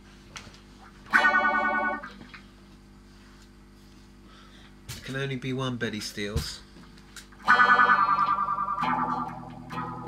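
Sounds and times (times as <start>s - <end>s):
steady low hum: 0.0s - 10.0s
distorted electric guitar chord: 1.1s - 2.2s, 7.4s - 10.0s.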